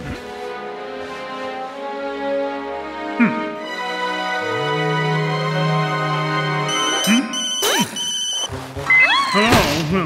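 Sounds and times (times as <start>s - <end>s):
romantic film score music: 0.0s - 10.0s
electronic telephone ringtone: 6.7s - 8.5s.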